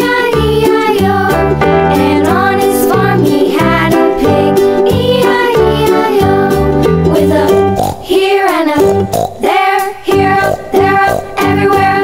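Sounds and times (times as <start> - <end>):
children's song: 0.0 - 12.0.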